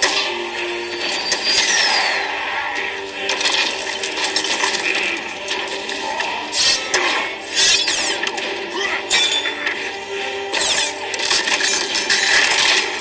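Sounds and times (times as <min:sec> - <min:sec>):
mechanical clicks and clanks: 0:10.5 - 0:13.0.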